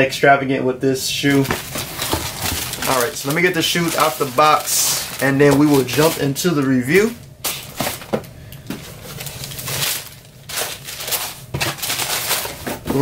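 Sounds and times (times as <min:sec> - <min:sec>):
paper rustling and crinkling: 0:01.2 - 0:13.0.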